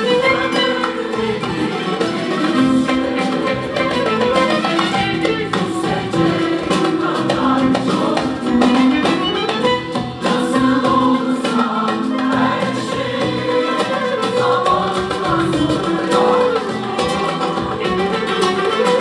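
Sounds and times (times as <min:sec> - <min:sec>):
acoustic guitar: 0:00.0 - 0:19.0
light rhythmic beat: 0:00.0 - 0:19.0
mixed choir singing: 0:00.0 - 0:19.0
violin: 0:00.0 - 0:19.0.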